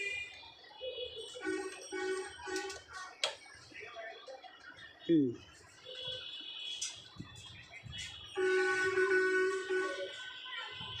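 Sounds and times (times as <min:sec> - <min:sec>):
steady horn-like tone: 0:08.4 - 0:10.2.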